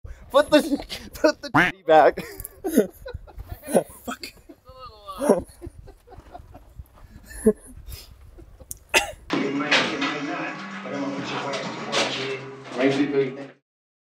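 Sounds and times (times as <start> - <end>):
man exclaiming and laughing: 0.4 - 6.0
music: 9.3 - 13.6.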